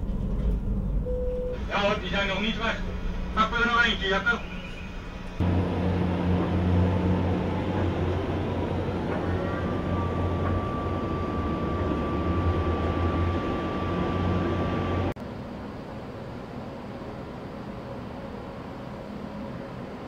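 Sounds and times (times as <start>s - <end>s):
boat diesel engine droning: 0.0s - 20.0s.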